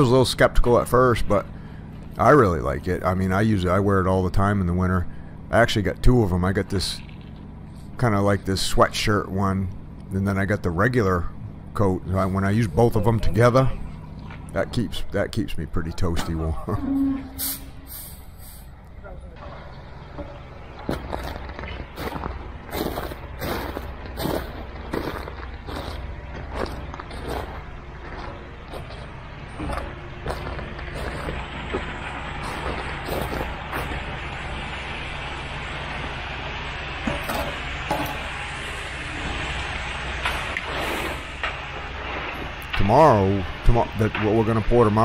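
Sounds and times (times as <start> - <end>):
diesel engine running: 0.0 - 45.0.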